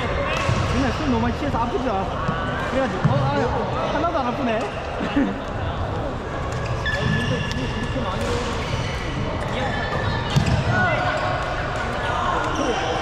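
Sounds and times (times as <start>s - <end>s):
background voices chattering: 0.0s - 13.0s
sneakers squeaking on floor: 6.5s - 10.7s, 12.5s - 13.0s.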